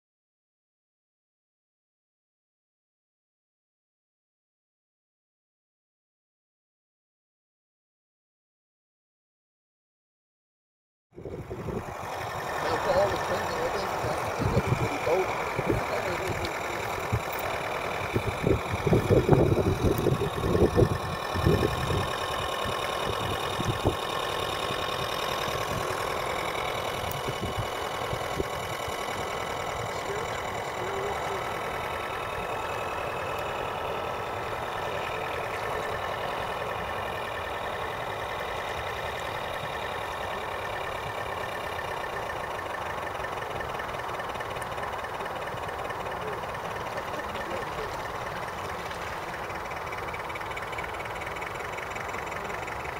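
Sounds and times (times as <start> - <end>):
wind buffeting microphone: 11.2 - 12.0, 14.1 - 16.4, 18.0 - 24.0, 27.0 - 28.8
model boat motor whine: 11.2 - 52.9.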